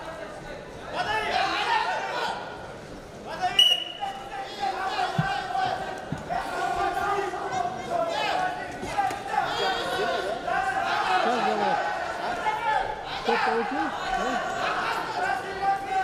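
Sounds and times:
coaches and crowd shouting: 0:00.2 - 0:02.6, 0:03.3 - 0:16.0
referee's whistle blast: 0:03.6 - 0:04.1.

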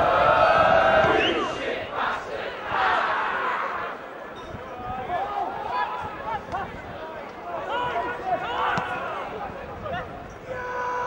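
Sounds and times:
football crowd chanting: 0:00.0 - 0:04.3
crowd shouting: 0:00.0 - 0:11.0.

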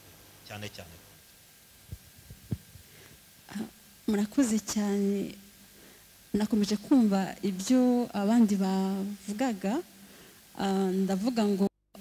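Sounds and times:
microphone handling thumps: 0:01.8 - 0:02.9.

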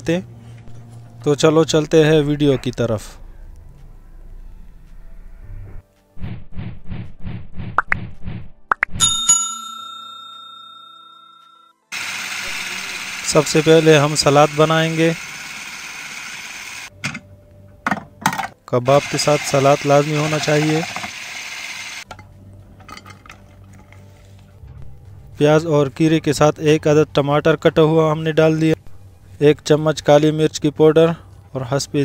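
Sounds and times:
bell chime notification: 0:09.0 - 0:11.7.

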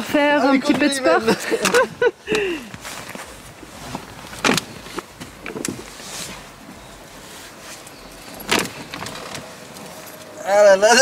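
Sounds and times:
clothes and seat fabric rustling: 0:00.0 - 0:11.0.

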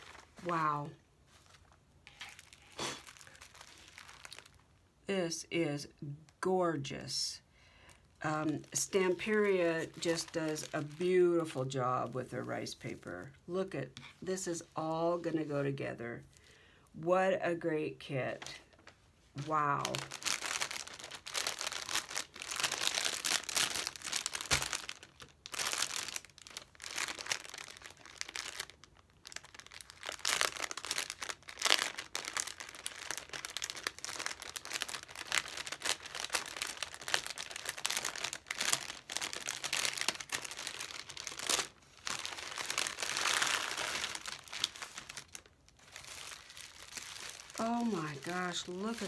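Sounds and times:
plastic packaging crinkling: 0:00.0 - 0:04.8, 0:07.8 - 0:13.3, 0:18.4 - 0:49.0.

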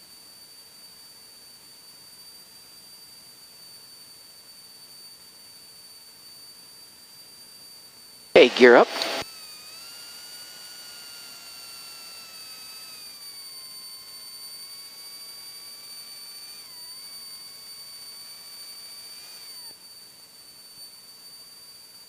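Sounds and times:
steady high-pitched tone: 0:08.4 - 0:22.0
hydraulic pump whining: 0:09.0 - 0:19.8.

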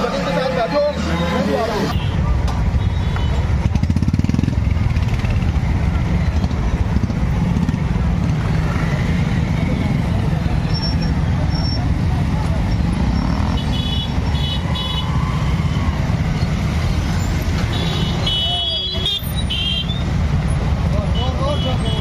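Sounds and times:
close motorcycle engine: 0:03.4 - 0:05.7
motorcycles riding past: 0:03.4 - 0:18.6.

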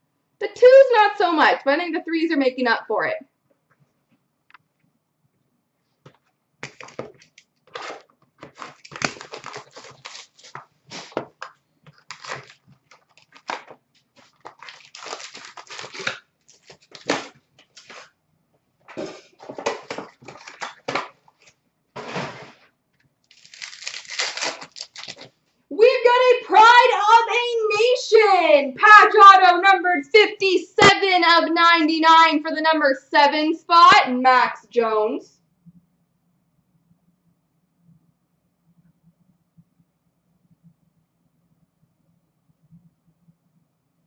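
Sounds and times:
card packs being torn open: 0:06.6 - 0:18.1, 0:19.5 - 0:21.5, 0:23.3 - 0:25.3
wrappers crinkling: 0:06.6 - 0:18.1, 0:19.6 - 0:21.6, 0:23.3 - 0:25.3.

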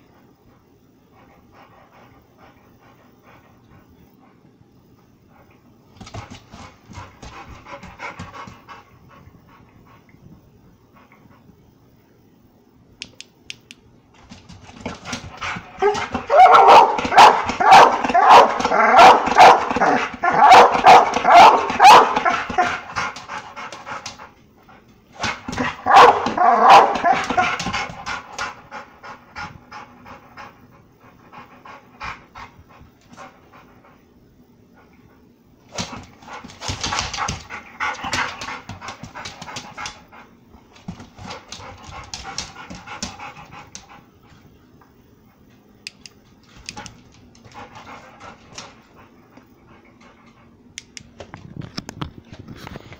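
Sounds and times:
dog barking excitedly: 0:15.0 - 0:24.0, 0:25.2 - 0:28.6.

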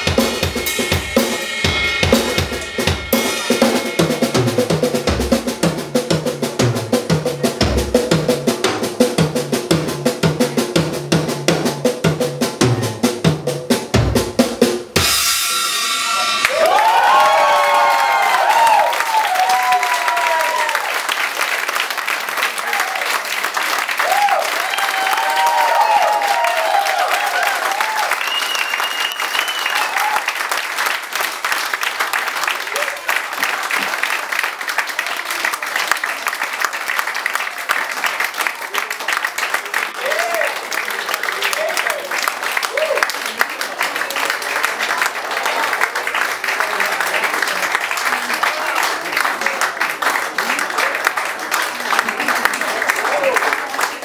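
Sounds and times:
drum kit solo: 0:00.0 - 0:18.9
audience cheering and applauding: 0:15.9 - 0:54.0.

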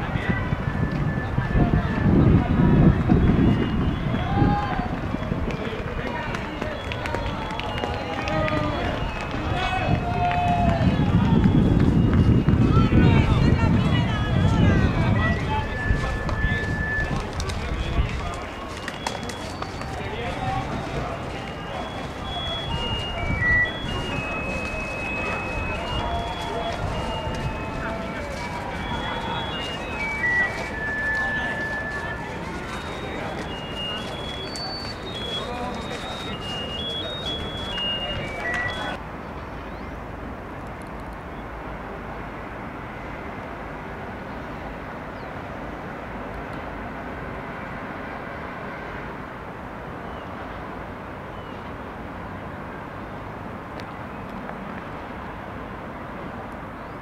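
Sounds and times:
wind buffeting microphone: 0:00.0 - 0:39.0
indistinct voices talking: 0:00.0 - 0:39.1
outdoor hubbub: 0:00.0 - 0:57.0
high melody of held notes: 0:12.0 - 0:39.0.

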